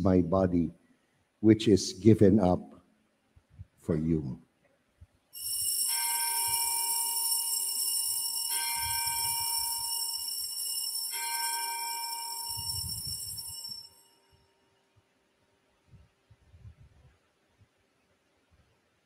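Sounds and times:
altar bells struck: 5.4s - 14.3s
shimmering bell jingle: 5.4s - 14.4s.

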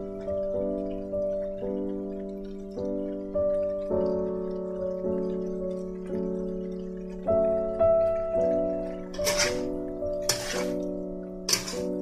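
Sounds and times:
held chords background music: 0.0s - 12.0s.

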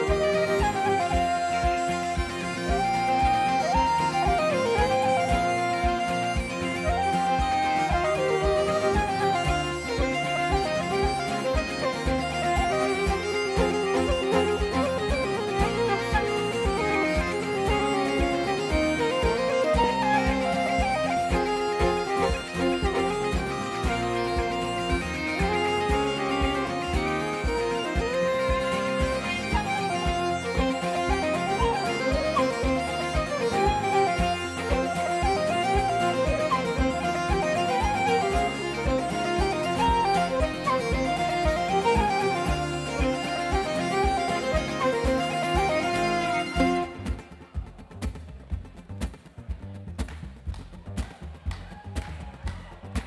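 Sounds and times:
flute: 0.0s - 47.6s
bagpipes: 0.0s - 47.7s
fiddle: 0.0s - 48.2s
acoustic guitar rhythm: 0.0s - 53.0s
double bass: 46.5s - 53.0s.

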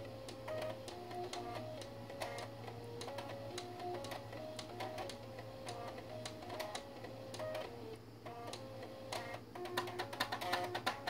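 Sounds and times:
floppy drive motors buzzing melody: 0.0s - 11.0s
steady low hum: 0.0s - 11.0s.

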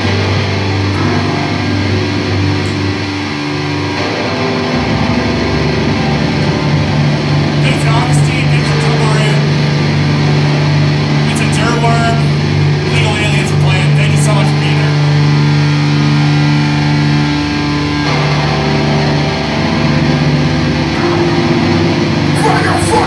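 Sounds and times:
amplified guitar drone: 0.0s - 23.0s
higher held notes: 0.0s - 23.0s.

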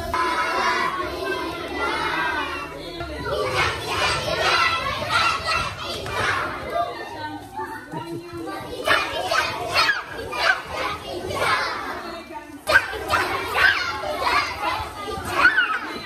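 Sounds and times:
children chattering and shouting: 0.0s - 16.0s.

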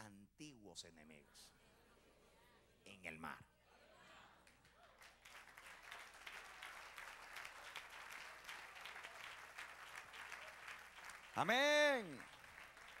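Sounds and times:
faint applause: 4.4s - 13.0s.

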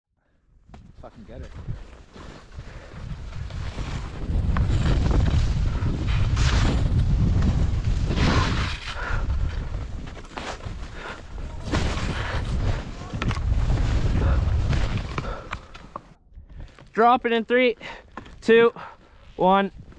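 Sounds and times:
wind buffeting microphone: 0.7s - 15.6s.

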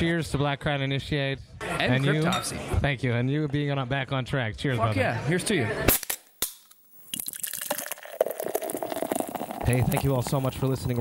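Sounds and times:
beer trickling and fizzing: 7.1s - 11.0s.

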